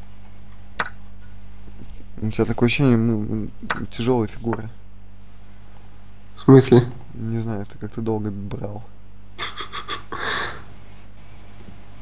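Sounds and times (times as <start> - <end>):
low electrical hum: 0.0 - 12.0
person breathing in huffs: 10.2 - 10.7.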